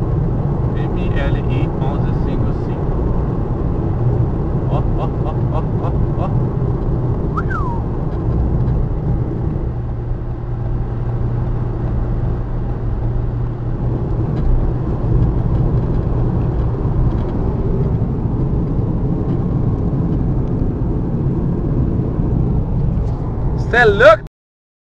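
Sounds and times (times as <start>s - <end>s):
tyre and road rumble: 0.0s - 24.0s
car engine hum: 0.0s - 24.2s.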